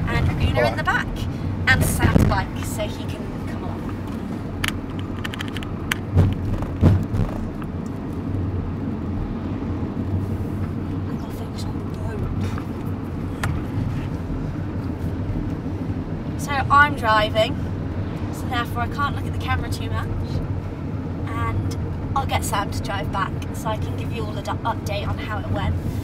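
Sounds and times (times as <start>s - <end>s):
engine and road rumble: 0.0s - 26.0s
knocks and rattles: 4.6s - 7.6s.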